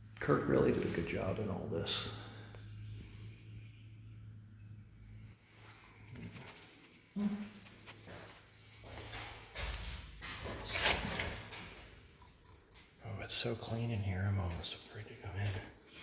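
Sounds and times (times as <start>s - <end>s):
door opening: 9.1s - 11.9s.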